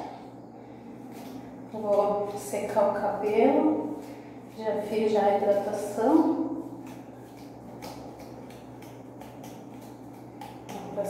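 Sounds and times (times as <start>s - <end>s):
low room hum: 0.0s - 11.0s
comb clicking through hair: 6.8s - 11.0s.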